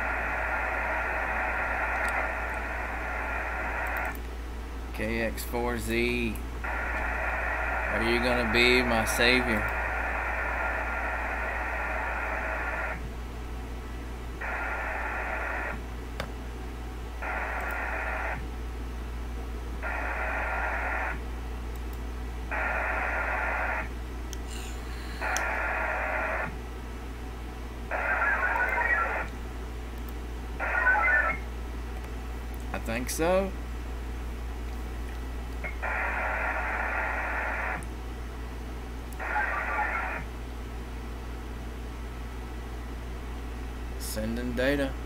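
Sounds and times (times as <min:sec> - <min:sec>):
radio data tone bursts: 0:06.1 - 0:13.0, 0:24.5 - 0:26.6, 0:27.9 - 0:29.3, 0:30.6 - 0:31.5, 0:35.6 - 0:37.8, 0:39.2 - 0:40.3.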